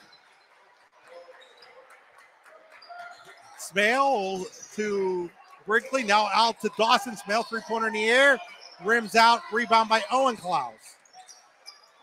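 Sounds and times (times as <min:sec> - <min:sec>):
distant crowd voices: 0:01.0 - 0:11.8.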